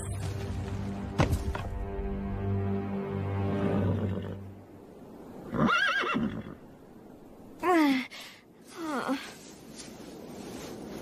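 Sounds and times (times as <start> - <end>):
horse whinnying: 5.5 - 6.6.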